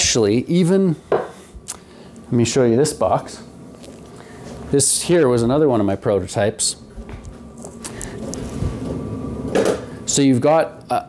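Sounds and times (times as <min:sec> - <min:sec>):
low rumbling handling noise: 0:06.8 - 0:10.0.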